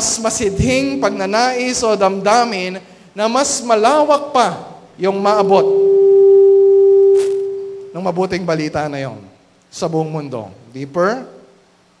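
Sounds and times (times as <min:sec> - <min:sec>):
steady pure tone: 0:00.0 - 0:03.6, 0:04.9 - 0:08.7.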